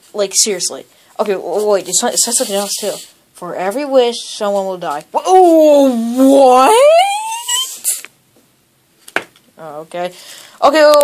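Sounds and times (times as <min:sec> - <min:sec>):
person saying oh: 0:05.2 - 0:07.9.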